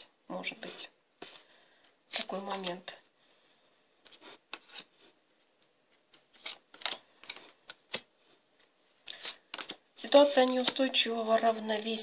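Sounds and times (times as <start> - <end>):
cards being shuffled: 2.1 - 2.9, 4.0 - 5.1, 5.9 - 8.1, 9.0 - 11.9.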